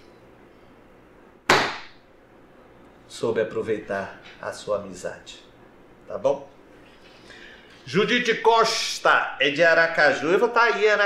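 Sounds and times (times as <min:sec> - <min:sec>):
palms slapping a desktop: 0:01.5 - 0:01.9.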